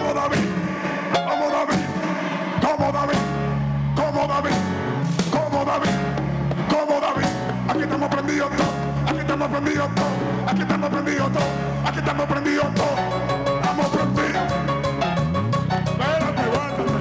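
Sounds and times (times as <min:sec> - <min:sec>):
bass guitar: 0:00.0 - 0:17.0
drum kit: 0:00.0 - 0:17.0.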